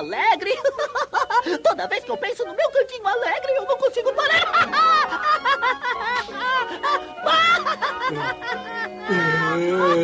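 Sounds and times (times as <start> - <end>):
background film music: 0.0 - 10.0
high-pitched cartoon laughter: 4.0 - 10.0.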